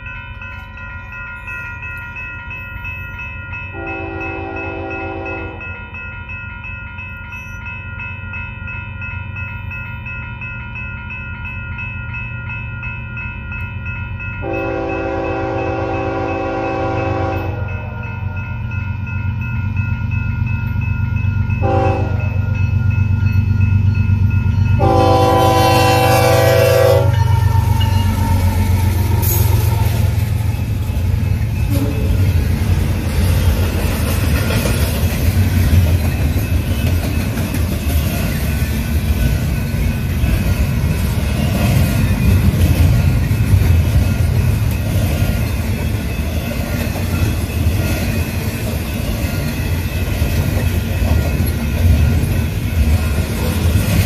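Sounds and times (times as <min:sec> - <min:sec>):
crossing bell ringing: 0:00.0 - 0:54.0
train engine and wheel noise: 0:00.0 - 0:54.0
locomotive horn: 0:03.8 - 0:05.7, 0:14.4 - 0:17.8, 0:21.6 - 0:22.4, 0:24.8 - 0:28.6.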